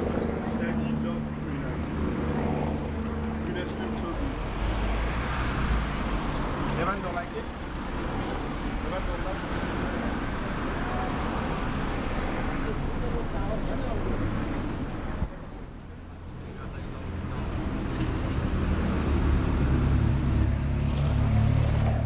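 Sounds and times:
roadway noise: 0:00.0 - 0:22.0
vehicles passing: 0:00.0 - 0:22.0.

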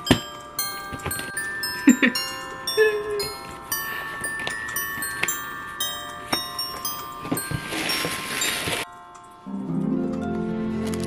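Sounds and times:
chiming mallet notes: 0:00.0 - 0:10.4
paper rustling: 0:06.8 - 0:08.9.

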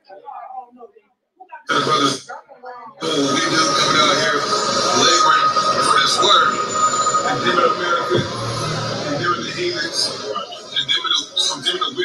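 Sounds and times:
man talking over microphone: 0:03.0 - 0:12.0.

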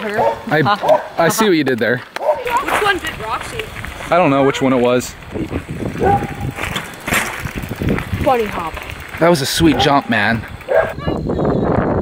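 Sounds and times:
bike tyres crunching on gravel: 0:00.0 - 0:11.2
bike landing clatter: 0:05.5 - 0:10.9.

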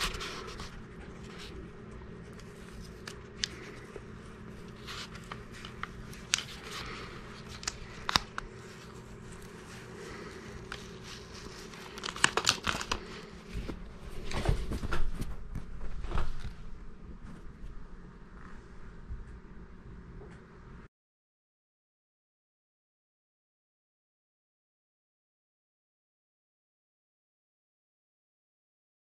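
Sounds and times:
paper and vinyl crinkling: 0:00.0 - 0:17.8.

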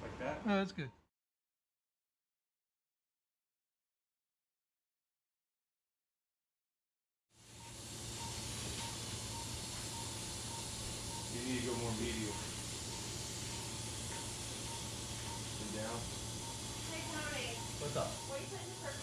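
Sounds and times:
low equipment hum: 0:07.4 - 0:19.0
surgical suction hissing: 0:07.4 - 0:19.0
faint regular beep: 0:07.6 - 0:19.0.

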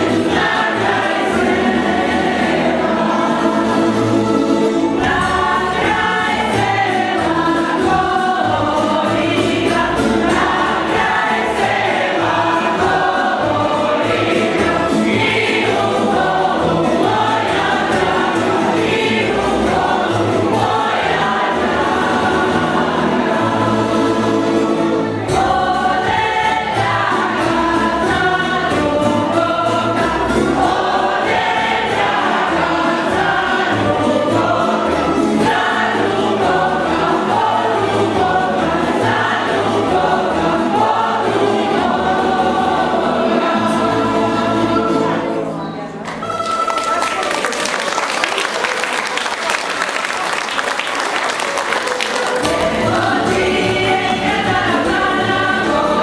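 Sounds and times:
mixed choir singing folk song: 0:00.0 - 0:56.0.

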